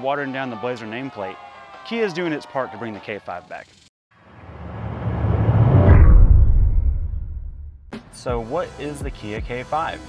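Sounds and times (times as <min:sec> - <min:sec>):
deep rumble and whoosh: 0:04.2 - 0:07.9.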